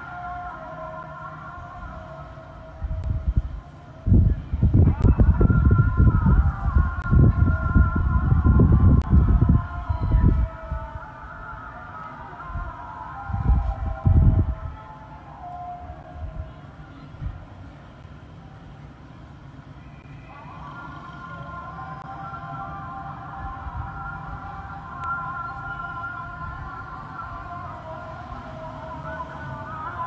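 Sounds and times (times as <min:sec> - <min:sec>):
wind buffeting microphone: 0:02.6 - 0:11.4, 0:12.4 - 0:14.9.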